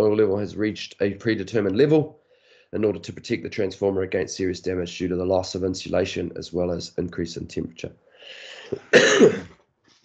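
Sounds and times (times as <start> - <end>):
noisy breath: 2.2 - 2.8, 8.0 - 8.8
man coughing loudly: 8.6 - 9.5.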